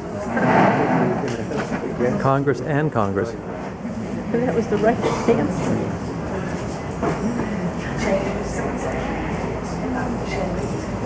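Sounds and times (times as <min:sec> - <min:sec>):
murmur of people chatting: 0:00.0 - 0:11.0
steady background noise: 0:00.0 - 0:11.0.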